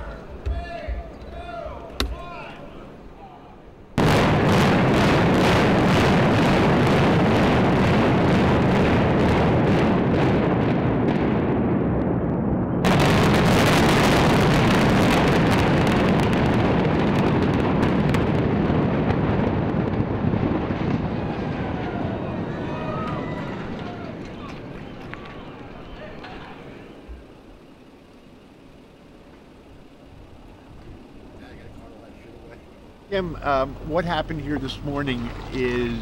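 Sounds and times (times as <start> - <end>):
demolition charges cracking: 4.0 - 27.1
building collapsing rumble: 4.0 - 27.3.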